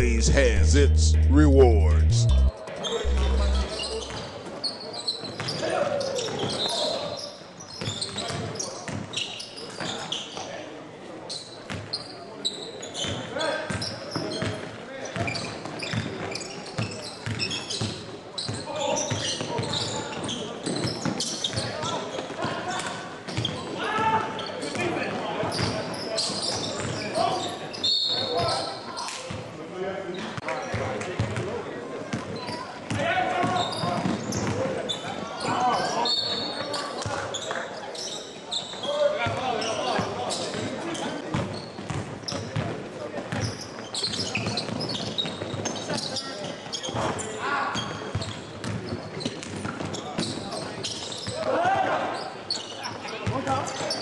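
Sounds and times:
voices of players and spectators: 0:00.0 - 0:04.2, 0:18.6 - 0:45.1, 0:45.8 - 0:54.0.

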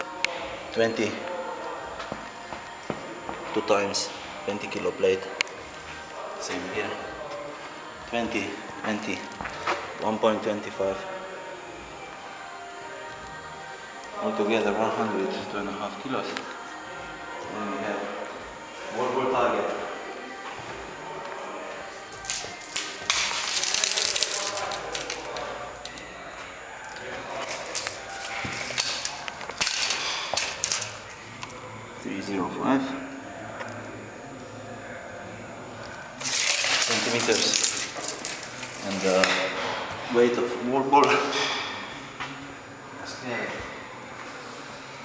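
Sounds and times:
tape measure blade rattling: 0:22.2 - 0:25.4.

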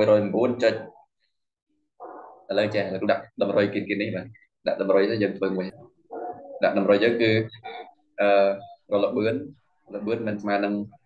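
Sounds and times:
man talking: 0:00.0 - 0:01.1, 0:02.5 - 0:05.9, 0:06.5 - 0:11.0.

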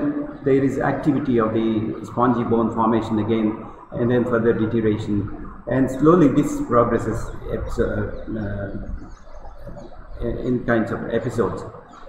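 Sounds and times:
man's drawn-out hesitation sound: 0:00.0 - 0:09.0, 0:09.6 - 0:11.8.

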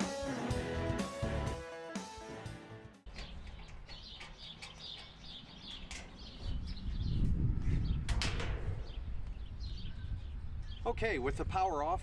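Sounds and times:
small birds chirping: 0:03.1 - 0:11.3.

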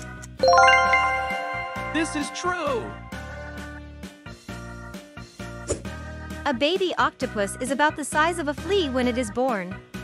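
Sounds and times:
bright bell-like chime run: 0:00.4 - 0:03.8
light background music: 0:00.4 - 0:03.9.

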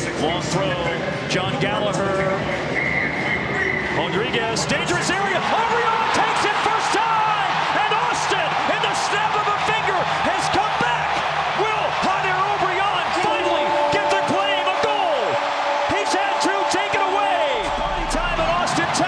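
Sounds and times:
stadium crowd cheering: 0:02.5 - 0:19.0.

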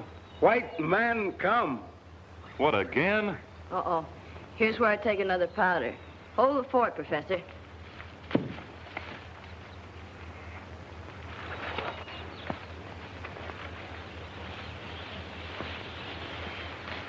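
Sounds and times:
film soundtrack hiss and hum: 0:00.0 - 0:17.0
foliage rustling: 0:07.5 - 0:17.0.

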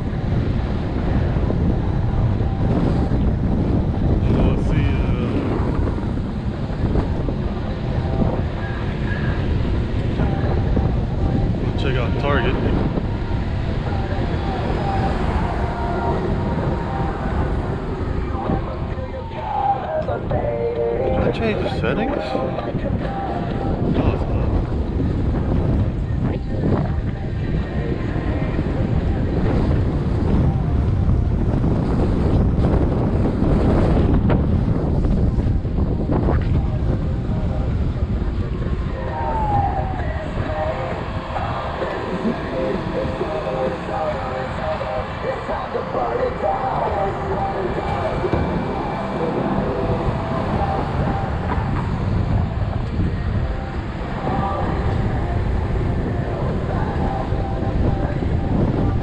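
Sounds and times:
low road rumble: 0:00.0 - 0:59.0
wind buffeting microphone: 0:00.0 - 0:59.0.

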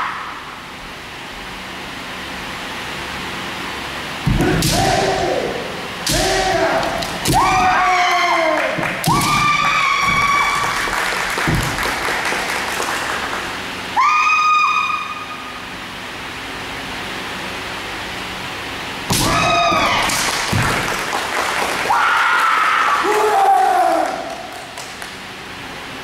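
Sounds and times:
long held yells: 0:04.5 - 0:10.9, 0:14.0 - 0:15.4, 0:19.2 - 0:20.2, 0:21.8 - 0:24.5.

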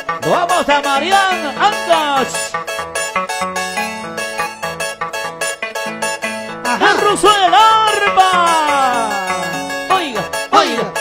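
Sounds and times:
harp playing dance music: 0:00.0 - 0:11.0.

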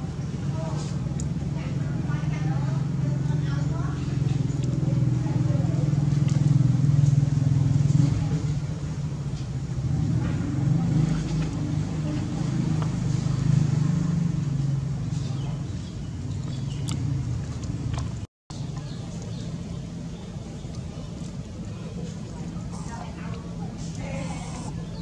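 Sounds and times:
low engine hum: 0:00.0 - 0:25.0.

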